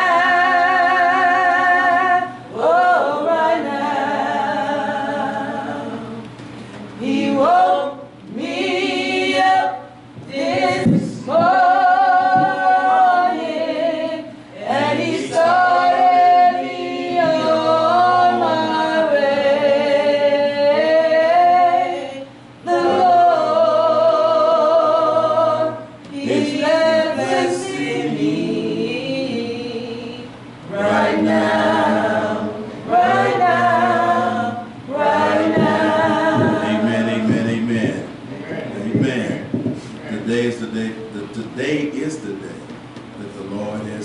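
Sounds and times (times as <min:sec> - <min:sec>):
person singing gospel unaccompanied: 0:00.0 - 0:42.1.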